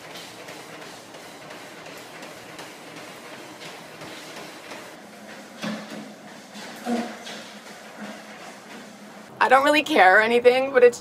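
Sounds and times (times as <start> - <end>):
treadmill running: 0.0 - 9.4.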